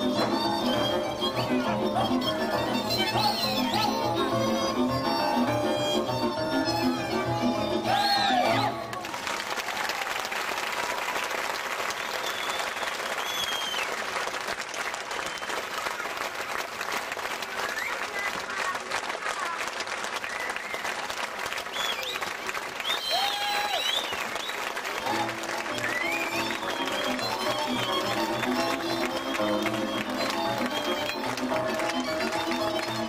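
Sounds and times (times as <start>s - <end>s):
folk band playing: 0.0s - 9.2s, 24.8s - 33.0s
audience applauding: 7.9s - 33.0s
high calls from audience: 21.8s - 24.3s.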